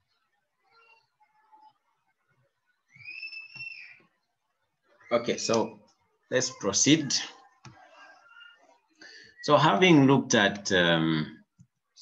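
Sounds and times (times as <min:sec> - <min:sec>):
high whistle-like tone: 0:02.9 - 0:04.1.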